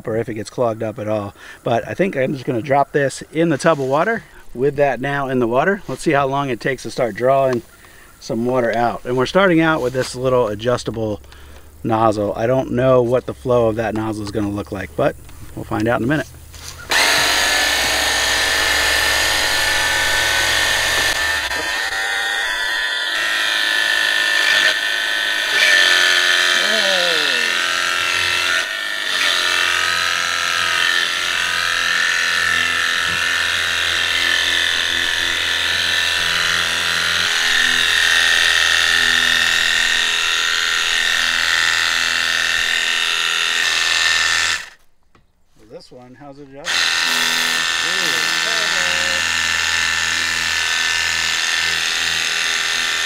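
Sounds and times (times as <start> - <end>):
electric pump whine: 1.2 - 44.8, 46.6 - 53.0
low hum: 8.7 - 31.6.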